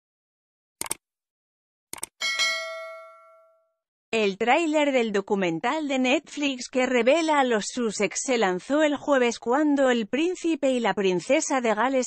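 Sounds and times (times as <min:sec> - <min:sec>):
bright bell ding: 0:02.2 - 0:03.7.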